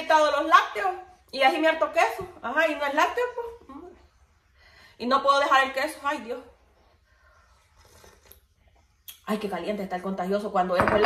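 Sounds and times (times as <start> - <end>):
blowing and sipping coffee: 7.0 - 9.2.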